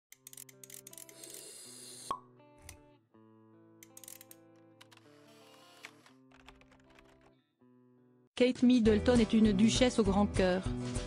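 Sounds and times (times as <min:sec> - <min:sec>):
soft background music: 0:00.1 - 0:07.3, 0:08.4 - 0:11.0.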